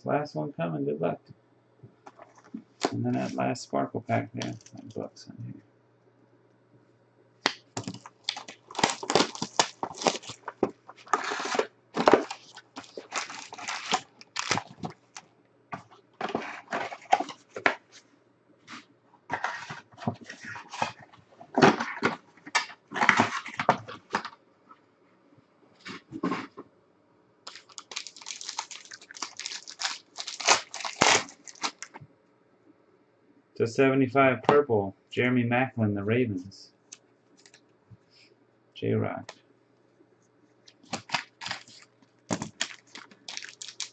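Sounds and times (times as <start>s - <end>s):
foil wrappers tearing and crinkling: 7.8s - 15.2s, 27.5s - 31.9s, 40.8s - 43.9s.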